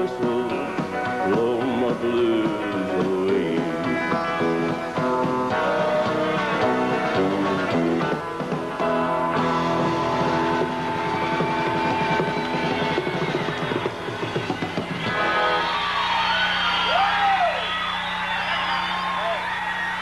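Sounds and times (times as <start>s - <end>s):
acoustic guitar strumming: 0.0s - 14.2s
live country band: 0.0s - 17.4s
audience cheering and whistling: 10.2s - 20.0s.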